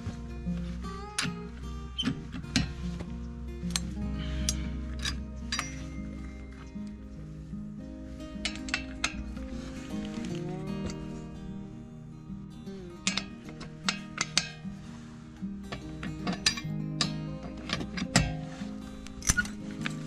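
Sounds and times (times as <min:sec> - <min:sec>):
background music: 0:00.0 - 0:20.0
lug wrench clinking on wheel nuts: 0:01.0 - 0:07.0, 0:08.3 - 0:11.0, 0:13.0 - 0:14.8, 0:15.6 - 0:20.0.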